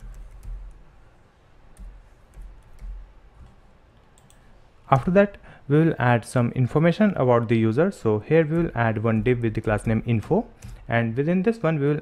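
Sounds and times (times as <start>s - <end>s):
man speaking: 4.9s - 12.0s.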